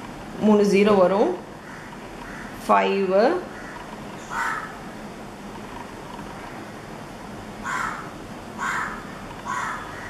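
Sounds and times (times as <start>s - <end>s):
bird calling: 3.5s - 4.8s, 7.6s - 10.0s.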